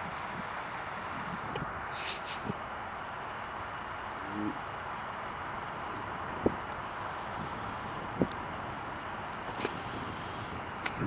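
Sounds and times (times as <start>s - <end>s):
wind on microphone: 0.0s - 2.6s, 5.6s - 11.0s
distant jet engine rumble: 0.0s - 11.0s.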